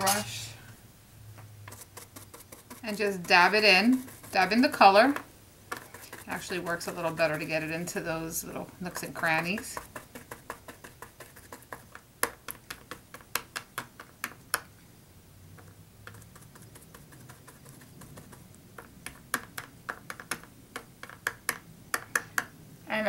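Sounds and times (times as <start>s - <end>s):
brush tapping on metal: 1.7s - 8.1s, 8.8s - 14.6s.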